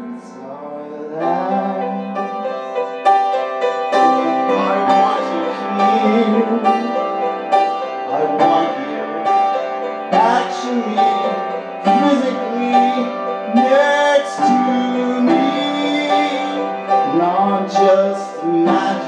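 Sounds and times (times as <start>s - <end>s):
person singing wordless notes: 0.0s - 19.0s
piano playing sustained chords: 0.0s - 19.0s.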